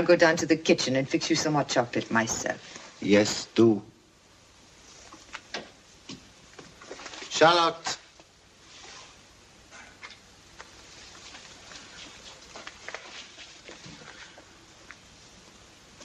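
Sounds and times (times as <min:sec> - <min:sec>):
soundtrack hiss: 0:00.0 - 0:16.0
soft ticks and rustles: 0:09.8 - 0:16.0.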